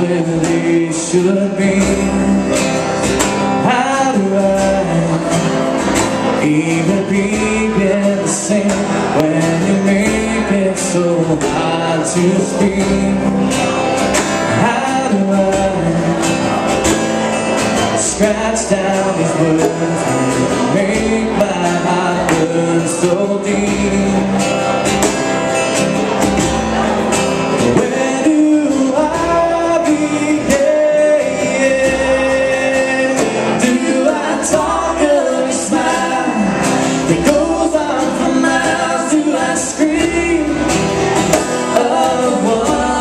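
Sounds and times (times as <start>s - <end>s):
man singing: 0.0s - 16.8s, 17.5s - 25.1s, 27.5s - 43.0s
strummed acoustic guitars: 0.0s - 43.0s.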